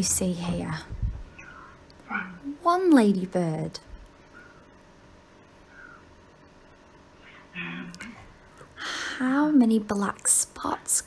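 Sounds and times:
woman breathing in: 8.6s - 9.2s.

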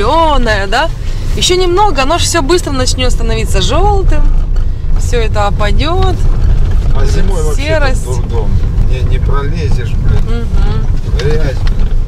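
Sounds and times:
car rumble on dirt road: 0.0s - 12.0s.

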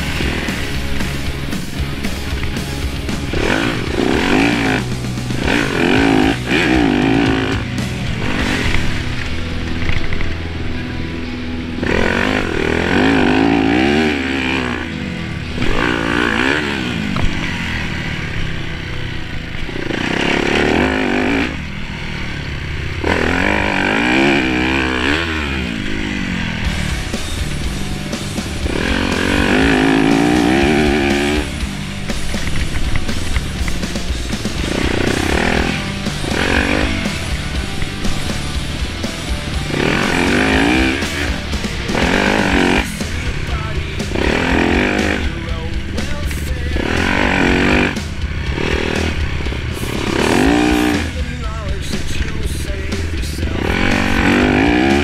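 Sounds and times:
dirt bike engine revving: 0.0s - 55.0s
rock music: 0.0s - 55.0s.

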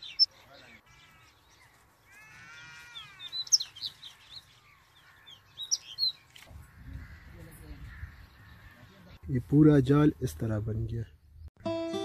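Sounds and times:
birds chirping: 0.0s - 11.5s.

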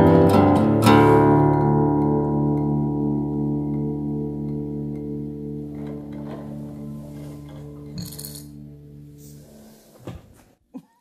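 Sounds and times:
acoustic guitar chord ringing: 0.0s - 7.9s.

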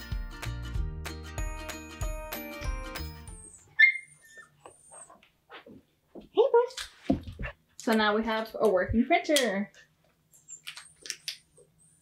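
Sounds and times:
background music: 0.0s - 3.7s
puppy whining: 3.3s - 5.3s
puppy yipping: 3.4s - 5.2s.

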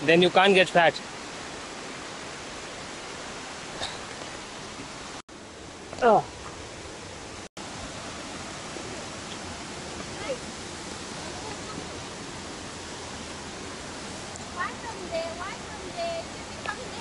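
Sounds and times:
river rushing: 0.0s - 17.0s.

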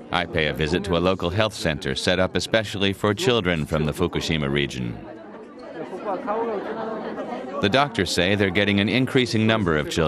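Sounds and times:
chatter of adults and children: 0.0s - 10.0s.

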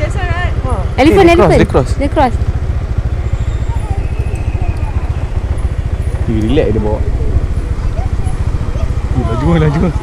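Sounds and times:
motorbike engine: 0.0s - 10.0s
wind buffeting microphone: 2.4s - 10.0s.

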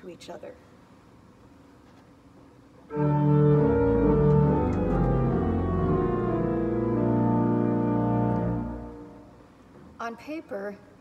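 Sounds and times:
pipe organ chords: 2.9s - 9.5s.

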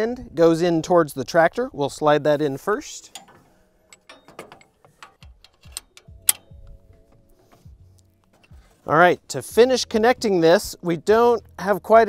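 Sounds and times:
metal clicks and knocks: 3.0s - 8.9s.

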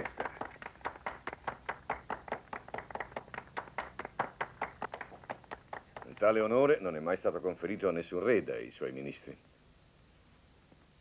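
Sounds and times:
group hand clapping: 0.0s - 6.4s.

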